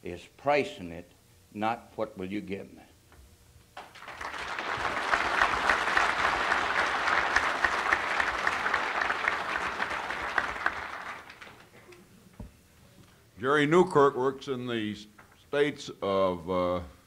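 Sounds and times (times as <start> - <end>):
audience applauding: 3.8 - 11.8.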